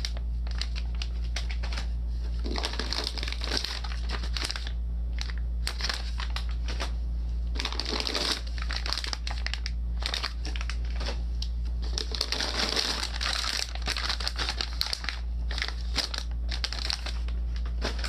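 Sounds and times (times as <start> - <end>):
foil pouches crinkling: 0.0 - 18.0
steady low hum: 0.0 - 18.0.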